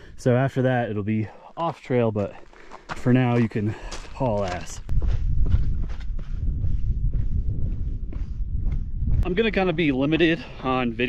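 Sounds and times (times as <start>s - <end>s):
footsteps crunching on scree: 1.7s - 6.4s
steady low rumble: 4.8s - 11.0s.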